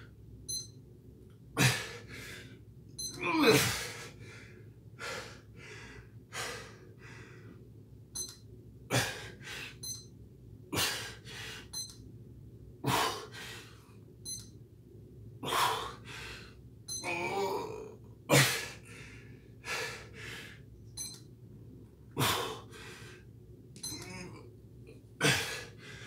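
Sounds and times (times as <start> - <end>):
man breathing hard: 1.6 - 2.6, 3.6 - 7.6, 8.9 - 9.8, 10.8 - 11.7, 12.8 - 13.9, 15.4 - 16.6, 18.4 - 20.7, 22.2 - 23.3, 25.2 - 26.0.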